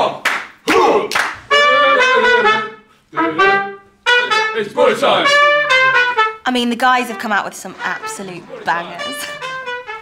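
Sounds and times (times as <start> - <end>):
trumpet held notes: 1.5 - 10.0.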